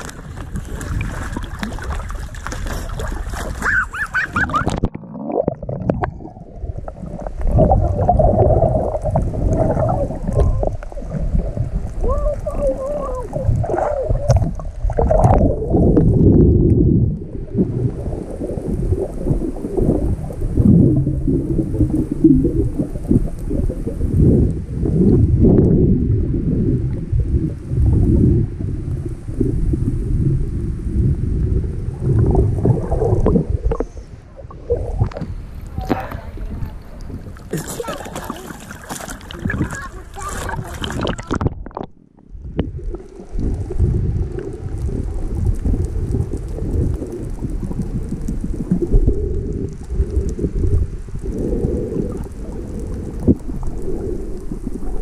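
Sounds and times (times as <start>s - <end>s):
muffled water sloshing underwater: 0.0s - 55.0s.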